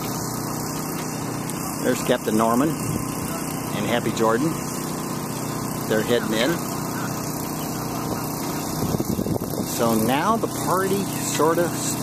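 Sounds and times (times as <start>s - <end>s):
boat engine idling: 0.0s - 12.0s.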